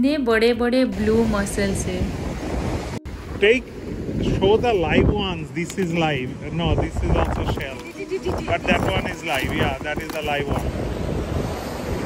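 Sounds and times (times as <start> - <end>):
ocean surf: 0.9 - 12.0
wind buffeting microphone: 0.9 - 12.0.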